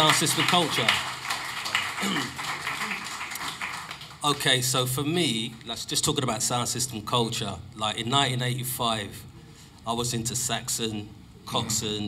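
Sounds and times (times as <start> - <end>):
people talking: 0.0 - 1.0, 4.2 - 9.2, 9.9 - 12.0.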